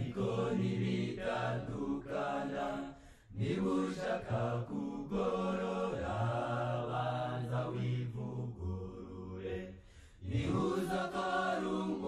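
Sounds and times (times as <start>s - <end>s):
slow chant-like vocal music: 0.0s - 12.0s.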